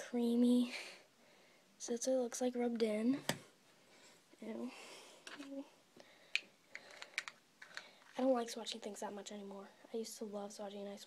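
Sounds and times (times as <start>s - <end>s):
plastic packaging clicks and taps: 6.3s - 7.9s.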